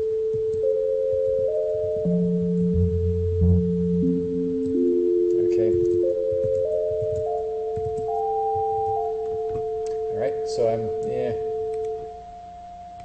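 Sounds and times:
higher sine tone stepping in pitch: 0.0 - 13.0
steady low sine tone: 0.0 - 13.0.

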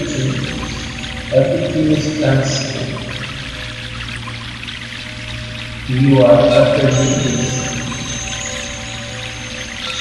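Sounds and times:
low drone: 0.0 - 10.0
running water: 0.0 - 10.0
soft background music: 0.0 - 10.0.

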